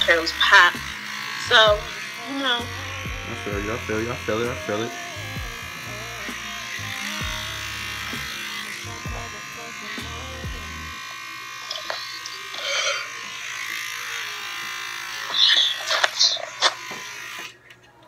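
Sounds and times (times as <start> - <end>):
low bass background music: 0.0 - 2.0, 2.6 - 11.0
electric hair clippers buzzing: 0.0 - 17.6.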